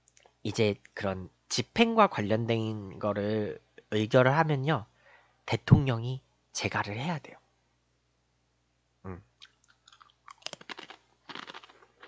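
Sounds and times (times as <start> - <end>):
chewing crunchy snack: 9.4 - 12.0.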